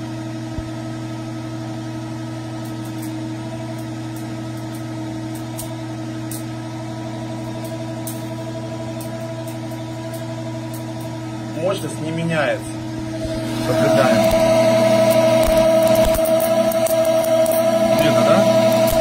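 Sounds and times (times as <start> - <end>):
electric motor hum: 0.0 - 19.0.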